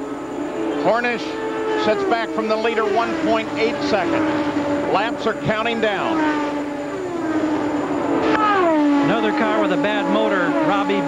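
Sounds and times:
race car engines passing by: 0.0s - 11.0s.

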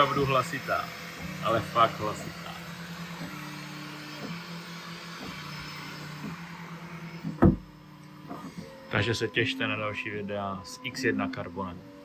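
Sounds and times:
stepper motors humming: 0.0s - 12.0s
sharp thump: 7.3s - 7.7s.

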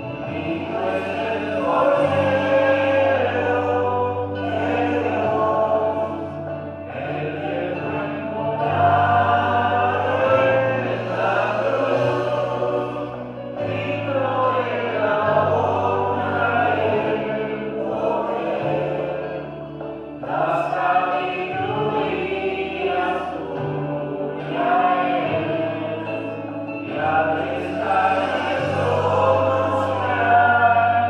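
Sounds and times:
choir singing: 0.0s - 31.0s
sustained low accompaniment notes: 0.0s - 31.0s.

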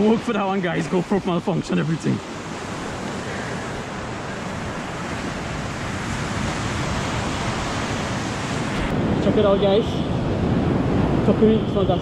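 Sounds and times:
ocean surf washing onto beach: 0.0s - 12.0s.

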